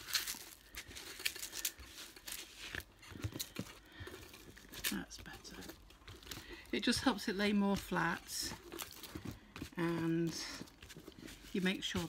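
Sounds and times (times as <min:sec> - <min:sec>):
hands rustling plastic film: 0:00.0 - 0:12.0.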